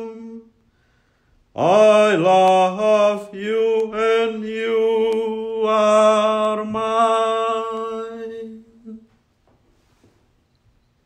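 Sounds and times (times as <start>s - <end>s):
man singing a hymn: 0.0s - 0.7s, 1.5s - 9.3s.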